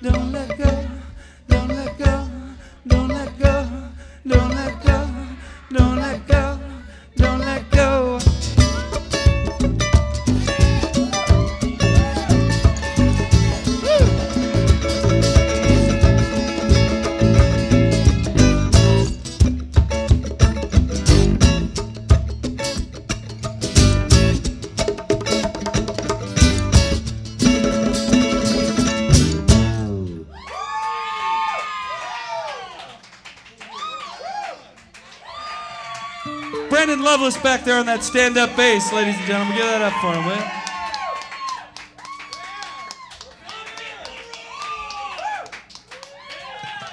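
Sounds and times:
live band playing: 0.0 - 30.3, 36.3 - 40.7
audience whooping and cheering: 10.6 - 19.2, 29.8 - 46.9.

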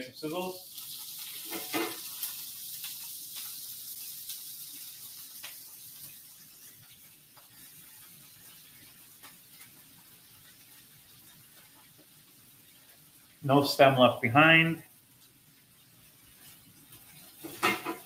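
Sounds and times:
oil popping and crackling: 0.0 - 13.9, 14.6 - 18.0
greens sizzling in frying pan: 0.0 - 18.0.

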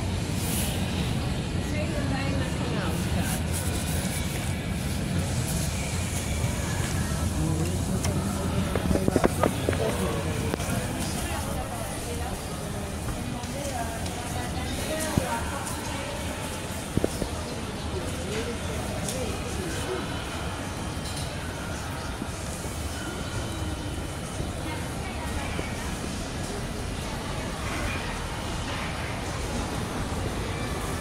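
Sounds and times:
indistinct background voices: 0.0 - 31.0.

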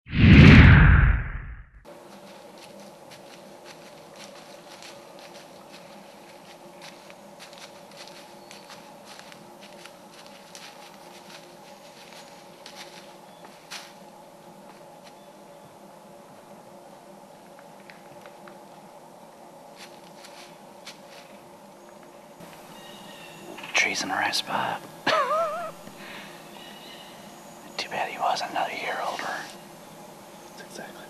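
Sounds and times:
loud swoosh: 0.1 - 1.8
footsteps on dry leaves: 1.9 - 14.1, 19.7 - 21.5, 22.4 - 23.4
faint steady hum: 1.9 - 31.0.

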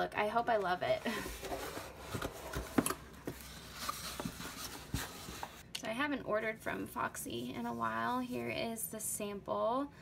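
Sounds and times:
cardboard box being opened: 1.1 - 5.6.

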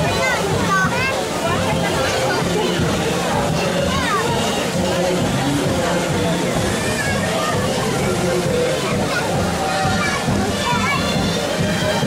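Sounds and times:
background music: 0.0 - 12.0
children chattering: 0.0 - 12.0
steady wash of noise: 0.0 - 12.0.

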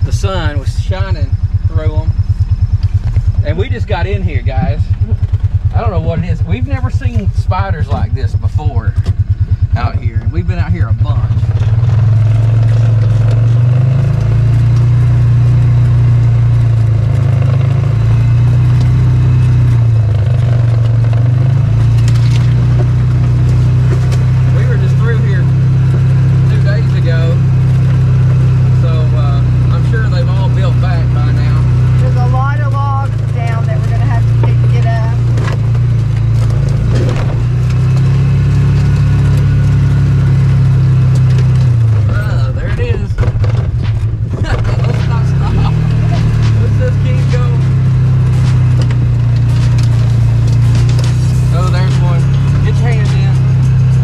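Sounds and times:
off-road vehicle engine running: 0.0 - 54.0.

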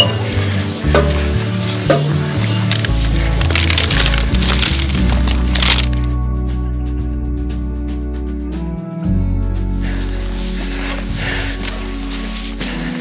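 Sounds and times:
background music: 0.0 - 13.0
rattling and scraping: 1.9 - 6.1
sharp metallic clinks: 2.7 - 6.1.

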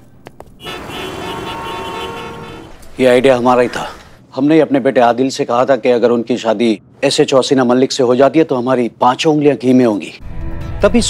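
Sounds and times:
hum of cars and motorbikes: 0.0 - 3.0
car horns tooting: 0.6 - 3.3.

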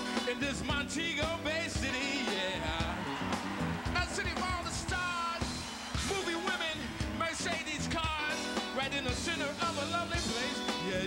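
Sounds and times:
person singing into a microphone: 0.0 - 3.0, 6.1 - 11.0
drum beat: 0.0 - 10.9
electric guitar: 0.0 - 11.0
keyboards: 0.0 - 11.0.

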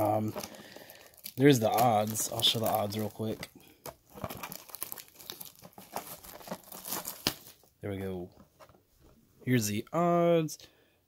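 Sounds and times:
plastic shrink wrap crinkling: 0.0 - 8.7.

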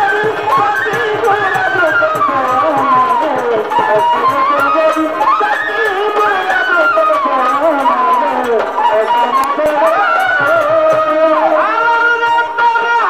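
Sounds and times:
hand drum strokes: 0.0 - 12.6
person singing: 0.0 - 13.0.

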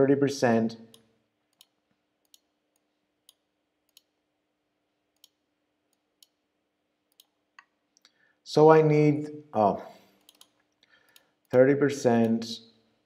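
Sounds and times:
computer mouse clicks: 0.9 - 4.1, 7.1 - 8.2, 10.2 - 11.6.

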